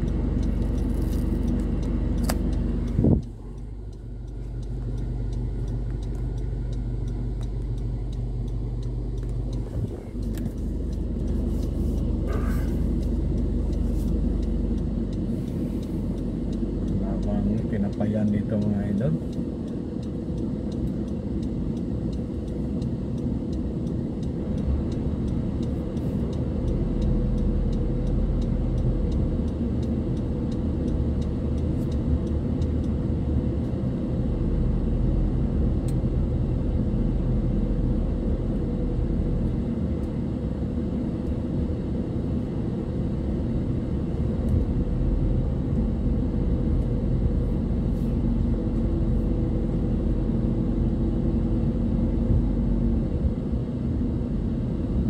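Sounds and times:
engine and road rumble: 0:00.0 - 0:55.0.

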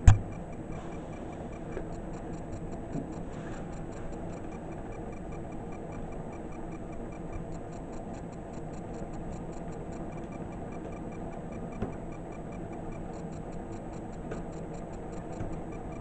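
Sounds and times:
single thump: 0:00.0 - 0:00.3
rapid even ticking: 0:00.0 - 0:16.0.

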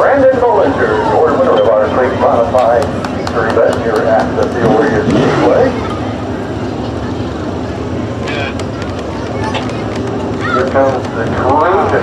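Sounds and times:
race car engines running: 0:00.0 - 0:12.0
voices in background: 0:00.0 - 0:12.0.

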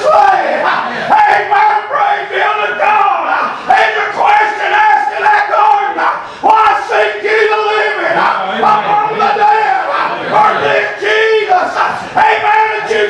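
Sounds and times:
man chanting preaching: 0:00.0 - 0:13.0.

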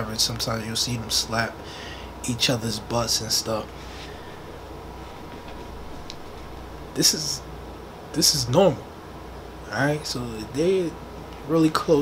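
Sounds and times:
background hiss: 0:00.0 - 0:12.0
low hum: 0:02.7 - 0:08.1.

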